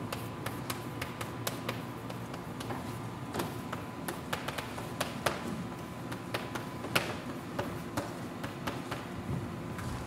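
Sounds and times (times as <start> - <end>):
chalk tapping on blackboard: 0.0 - 5.5, 6.1 - 9.2.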